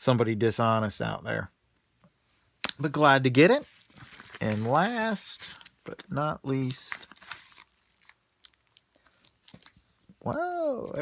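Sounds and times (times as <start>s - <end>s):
padded mailer rustling: 3.5s - 8.2s
plastic sleeve crackles: 3.5s - 10.2s.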